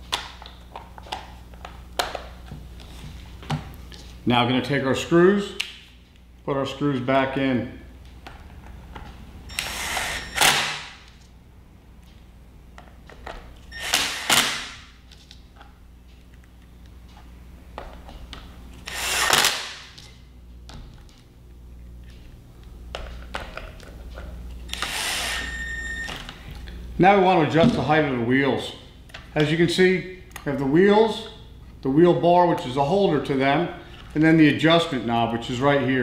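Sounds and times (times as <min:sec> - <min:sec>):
cordless drill running: 0:09.5 - 0:10.6, 0:13.7 - 0:14.6, 0:18.8 - 0:19.6, 0:24.7 - 0:26.0.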